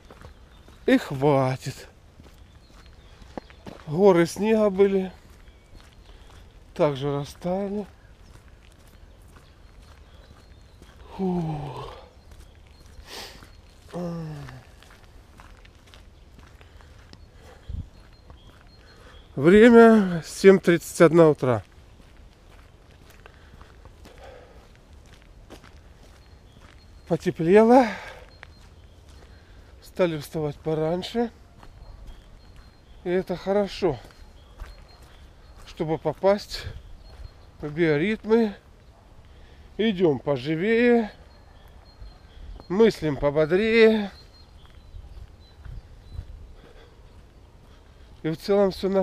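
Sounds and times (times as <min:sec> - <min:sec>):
footsteps on wet dirt path: 0:00.0 - 0:49.0.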